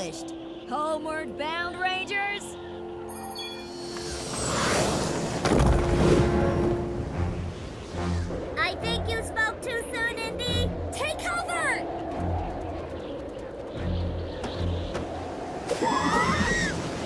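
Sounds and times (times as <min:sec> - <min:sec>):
cartoon background music: 0:00.0 - 0:13.1
low rumble: 0:05.2 - 0:16.4.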